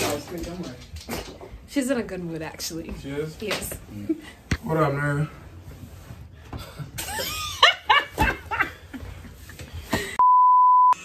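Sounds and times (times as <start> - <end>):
censor bleep: 10.2 - 11.0.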